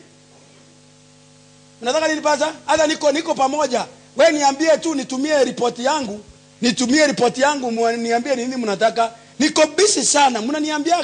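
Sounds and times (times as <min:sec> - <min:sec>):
electrical mains hum: 0:00.0 - 0:11.0
man speaking: 0:01.8 - 0:11.0.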